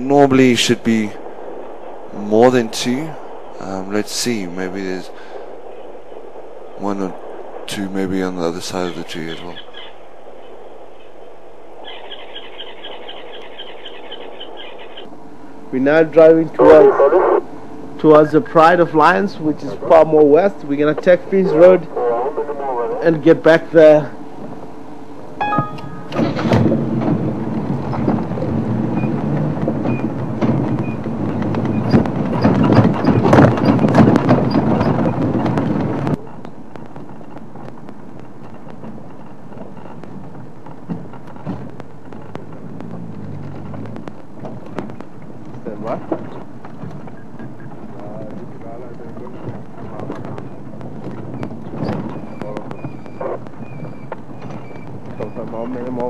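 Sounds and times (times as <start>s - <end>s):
rough rumbling vehicle engine: 0.0s - 56.0s
faint high tones: 25.4s - 26.2s
wind noise on microphone: 26.1s - 56.0s
scattered clicks: 30.8s - 56.0s.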